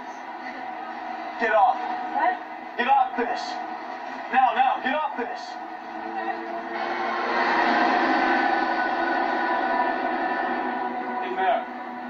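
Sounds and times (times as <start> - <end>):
steady rushing noise: 0.9 - 12.0
sustained orchestral chord: 5.6 - 12.0.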